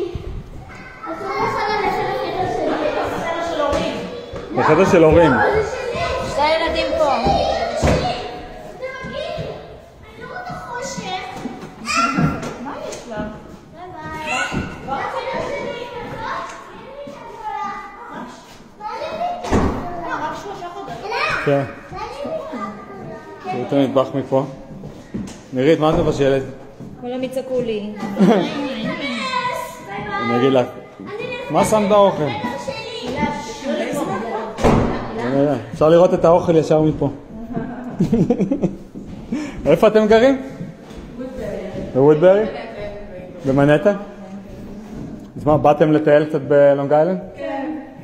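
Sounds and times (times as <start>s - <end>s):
children talking: 0.0s - 46.0s, 47.3s - 48.0s.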